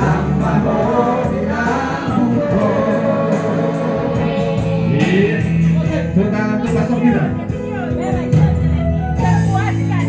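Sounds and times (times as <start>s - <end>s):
man singing into a microphone: 0.0s - 6.8s
backing music with steady beat: 0.0s - 10.0s.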